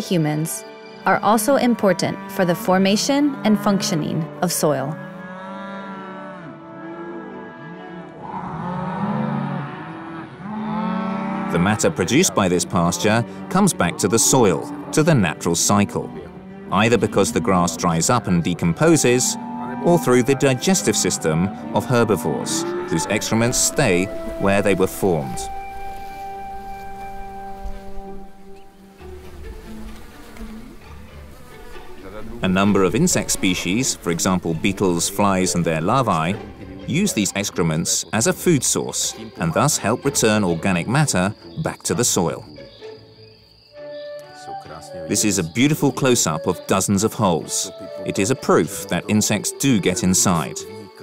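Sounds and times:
flies buzzing: 0:00.0 - 0:51.0
soft background music: 0:00.0 - 0:51.0
cattle mooing: 0:01.9 - 0:37.8.

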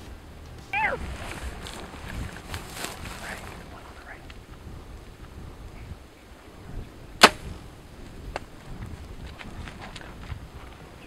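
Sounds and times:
bow string snap: 0:07.2 - 0:07.6.

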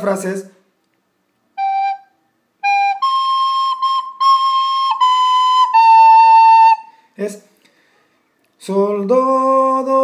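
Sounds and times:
recorder notes: 0:01.5 - 0:06.9.

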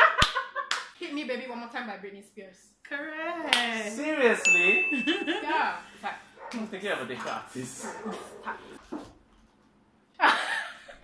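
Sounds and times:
dog yipping: 0:07.8 - 0:08.7.

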